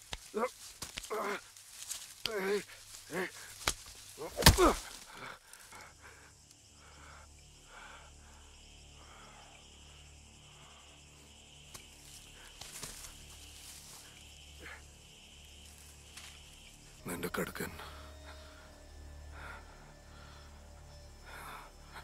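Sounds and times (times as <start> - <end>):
film soundtrack: 0.0 - 22.0.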